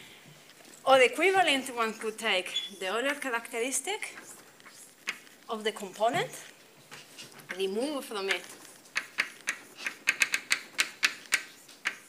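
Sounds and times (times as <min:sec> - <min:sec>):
chalk tapping on blackboard: 0:08.2 - 0:12.0.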